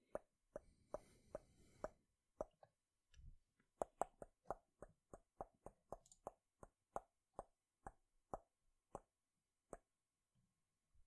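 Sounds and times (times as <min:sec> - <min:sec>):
computer mouse clicks: 0:05.9 - 0:06.4.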